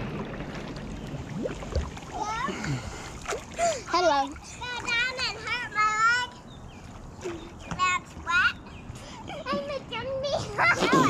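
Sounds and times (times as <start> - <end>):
pool water splashing: 0.0 - 9.7.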